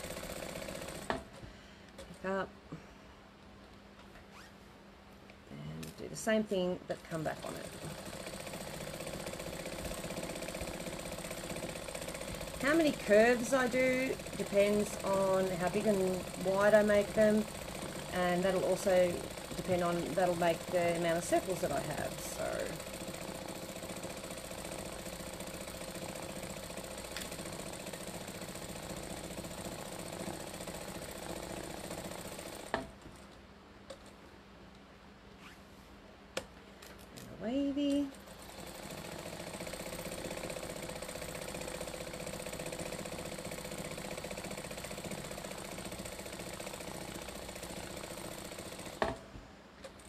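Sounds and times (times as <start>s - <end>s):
sewing machine stitching: 0.0s - 1.3s, 7.1s - 33.0s, 38.0s - 49.2s.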